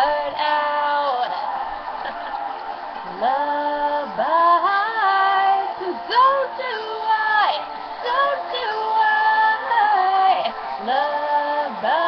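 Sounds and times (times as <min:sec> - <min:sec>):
woman singing rock song: 0:03.2 - 0:12.0.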